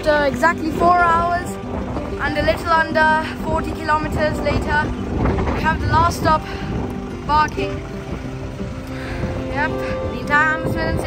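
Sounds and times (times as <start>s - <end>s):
soft background music: 0.0s - 11.0s
wind rumble on microphone: 0.0s - 11.0s.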